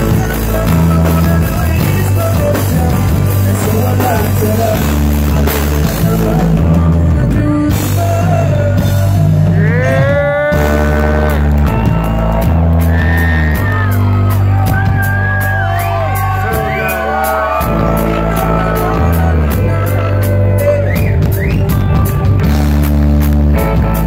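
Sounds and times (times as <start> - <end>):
bending lead guitar melody: 0.0 - 24.0
deep bass line: 0.0 - 24.0
live rock band playing: 0.0 - 24.0.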